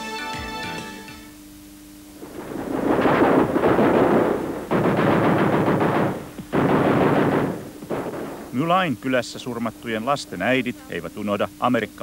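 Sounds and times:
machine-gun fire: 2.2s - 9.0s.

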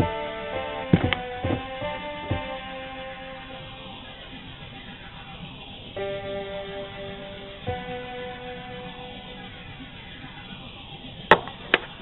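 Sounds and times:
guitar notes ringing: 0.0s - 11.7s.

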